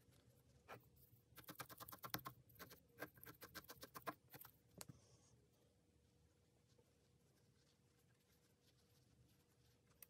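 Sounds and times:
felting needle stabbing wool: 0:01.3 - 0:04.6.

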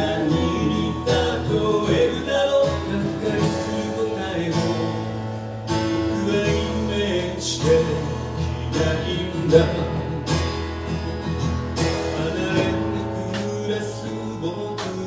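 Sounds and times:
man singing: 0:00.0 - 0:10.6, 0:11.8 - 0:15.0
acoustic guitar strumming: 0:00.0 - 0:15.0
drum beats: 0:09.6 - 0:13.8, 0:14.7 - 0:15.0.

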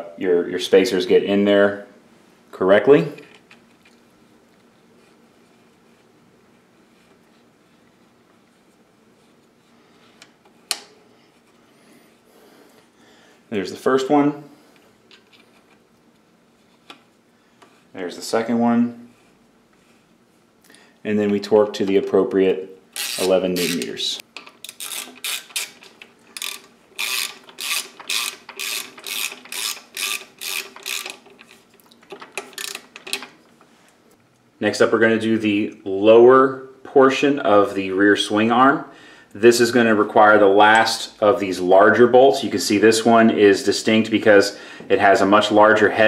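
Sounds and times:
faint handling noise: 0:14.5 - 0:34.5
ratcheting torque wrench: 0:23.0 - 0:33.3.

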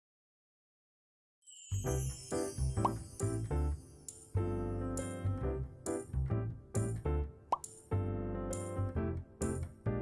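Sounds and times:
cheerful background music: 0:01.4 - 0:10.0.

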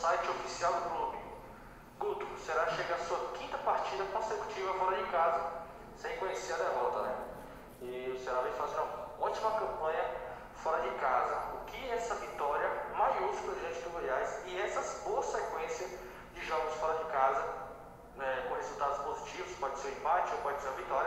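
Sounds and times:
person speaking: 0:00.0 - 0:21.0.

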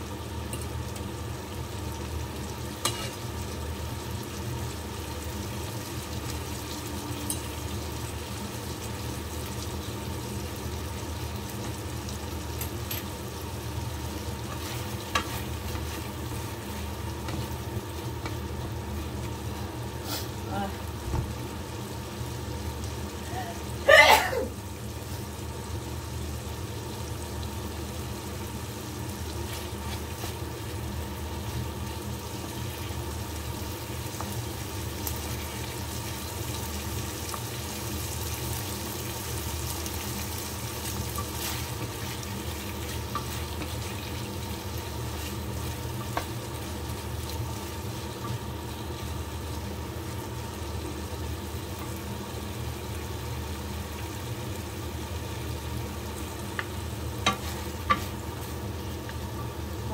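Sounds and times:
meat sizzling in wok: 0:00.0 - 0:59.9
wooden spatula stirring: 0:41.1 - 0:44.0.

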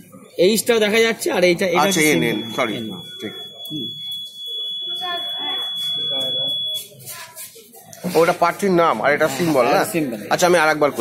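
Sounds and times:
people talking: 0:00.0 - 0:11.0
long high-pitched electronic beep: 0:01.4 - 0:07.0.

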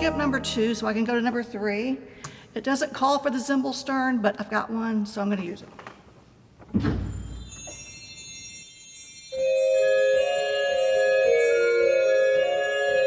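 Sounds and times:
small bells tinkling: 0:07.1 - 0:13.0
pipe organ chords: 0:09.4 - 0:13.0.

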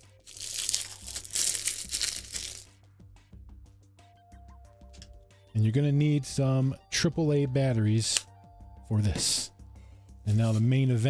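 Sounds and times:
plastic packaging crinkling: 0:00.0 - 0:02.7
quiet background music: 0:00.0 - 0:11.0.

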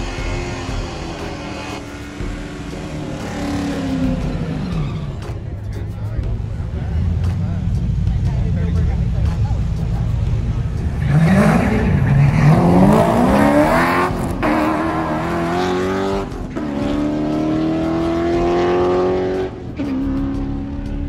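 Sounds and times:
drag race cars accelerating: 0:00.0 - 0:05.6, 0:06.8 - 0:21.0.

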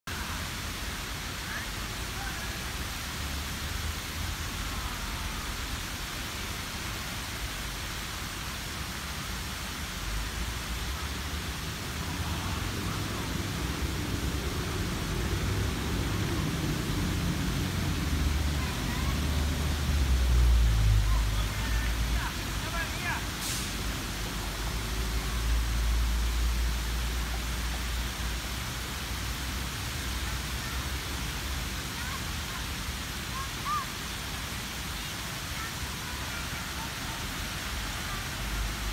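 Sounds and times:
fountain jets spraying water: 0:00.1 - 0:38.9
faint voices: 0:35.1 - 0:38.9.

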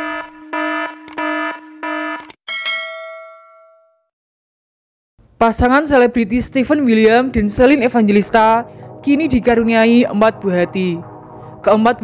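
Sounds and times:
electronic tone pulses with clicks: 0:00.0 - 0:02.4
bell-like ding: 0:02.5 - 0:04.1.

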